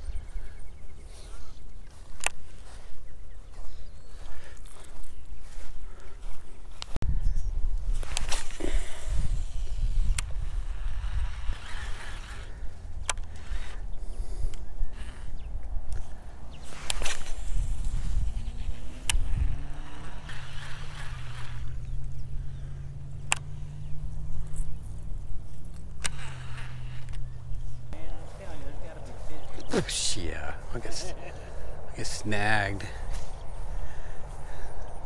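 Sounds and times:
wind buffeting microphone: 0.0 - 35.0
sharp clicks: 2.1 - 2.4, 10.1 - 28.0
low motor hum: 7.8 - 35.0.

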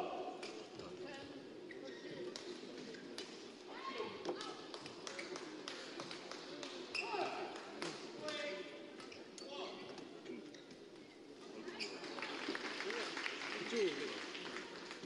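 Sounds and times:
shoe squeaks: 6.9 - 7.3.

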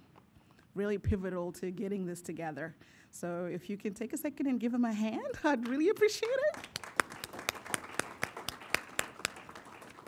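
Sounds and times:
small audience applauding: 6.3 - 10.0.

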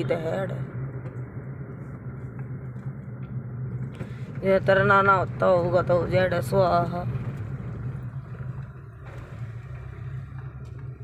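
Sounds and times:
car engine hum: 0.0 - 11.0
road noise inside car: 0.0 - 11.0.

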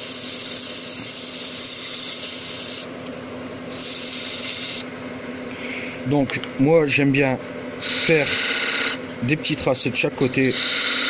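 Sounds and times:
sandpaper rubbing on spinning wood: 0.0 - 2.9
lathe motor hum: 10.0 - 11.0.

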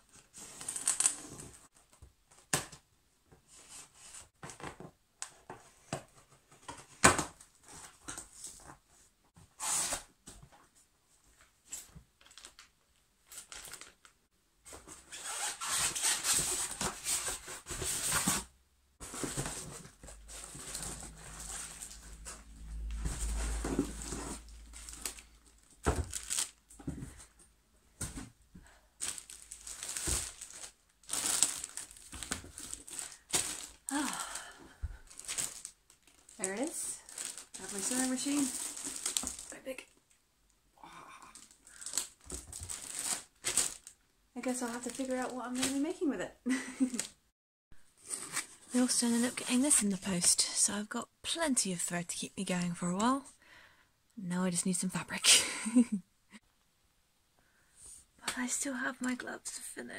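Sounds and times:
plastic wrapping crinkling: 12.2 - 14.2, 19.0 - 26.9, 28.6 - 40.1, 41.4 - 46.1
cardboard tearing and rustling: 23.1 - 26.6, 29.0 - 34.2, 35.1 - 39.6, 41.7 - 43.9.

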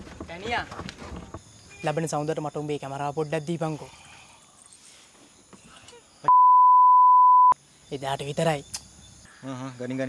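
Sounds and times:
censor bleep: 6.3 - 7.6.

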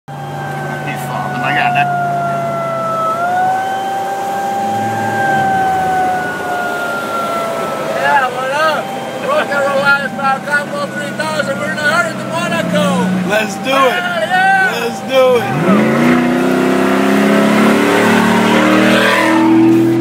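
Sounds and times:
vehicle siren wailing: 0.1 - 20.0.

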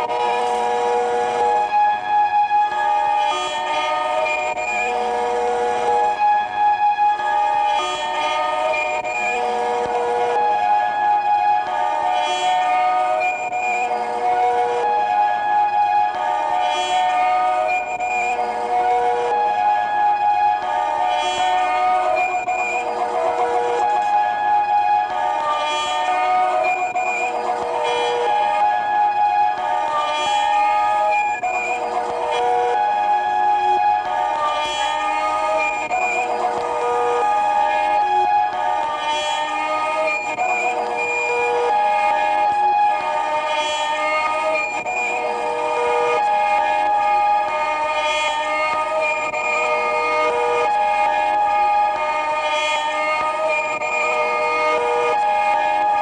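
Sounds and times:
layered horn-like held tones: 0.0 - 56.0.

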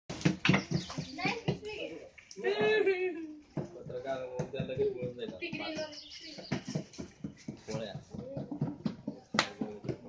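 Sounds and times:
people talking: 0.7 - 3.3.

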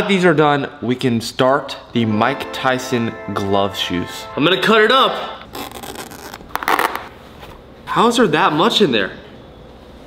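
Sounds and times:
scratchy rustling and tearing: 5.4 - 7.5.

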